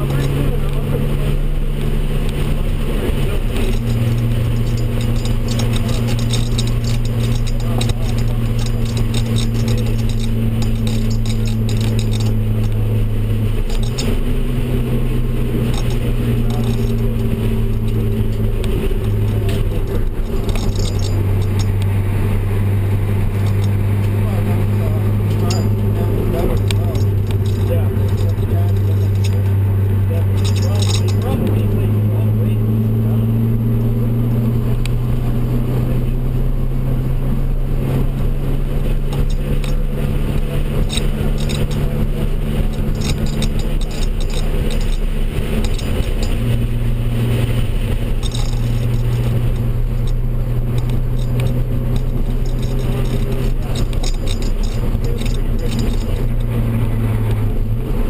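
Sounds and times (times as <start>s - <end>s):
car engine drone from inside cabin: 0.0s - 58.0s
road and wind noise: 0.0s - 58.0s.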